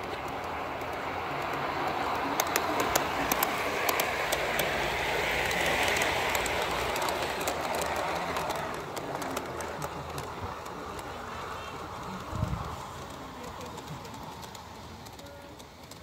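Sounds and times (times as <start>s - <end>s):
model train wheels clicking: 0.0s - 16.0s
train rolling rumble: 0.0s - 16.0s.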